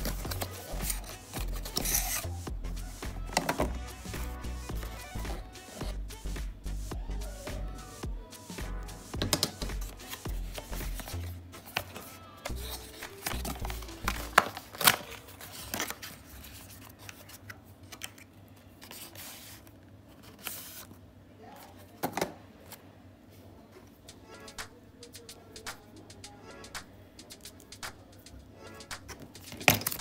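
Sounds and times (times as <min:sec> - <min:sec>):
cardboard scraping: 0:00.0 - 0:02.3, 0:09.2 - 0:17.4
paper rustling: 0:00.0 - 0:02.3, 0:09.2 - 0:21.0
background music: 0:00.0 - 0:15.0, 0:24.0 - 0:30.0.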